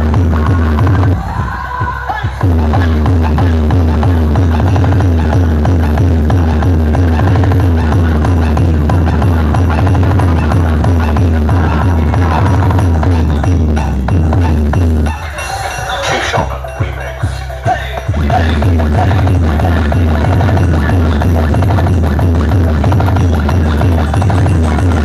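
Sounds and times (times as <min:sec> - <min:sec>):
loud electronic dance music: 0:00.0 - 0:25.0.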